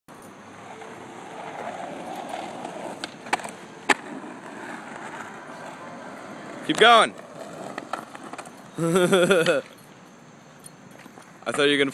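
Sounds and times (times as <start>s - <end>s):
skateboard wheels rolling on asphalt: 0.2s - 11.9s.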